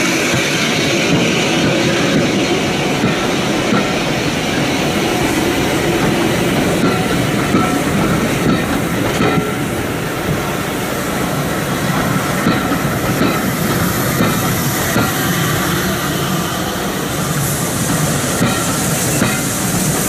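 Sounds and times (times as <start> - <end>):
train coaches rumbling past: 0.0 - 20.0.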